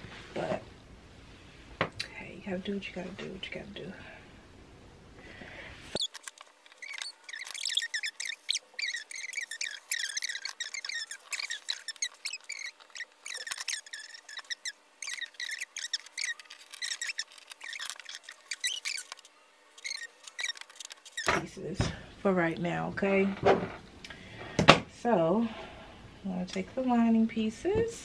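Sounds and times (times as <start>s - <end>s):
chair squeaking: 6.0s - 21.4s.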